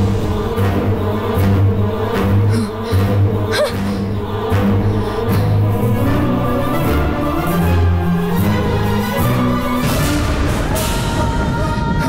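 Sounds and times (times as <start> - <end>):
choir-like voices: 0.0 - 12.0
sustained low notes: 0.0 - 12.0.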